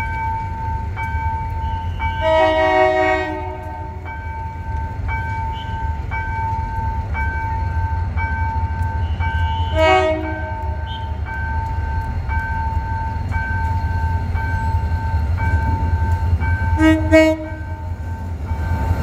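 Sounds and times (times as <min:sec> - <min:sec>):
level-crossing alarm beeping: 0:00.0 - 0:19.0
locomotive multi-tone horn: 0:01.5 - 0:04.0, 0:05.4 - 0:05.9, 0:08.8 - 0:11.2, 0:16.7 - 0:17.8.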